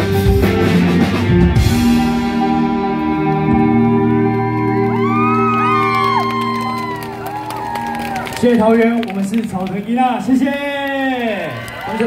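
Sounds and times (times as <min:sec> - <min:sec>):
live band final chord: 0:00.0 - 0:08.4
audience cheering and whooping: 0:02.8 - 0:09.3, 0:10.4 - 0:12.0
scattered clapping: 0:04.5 - 0:12.0.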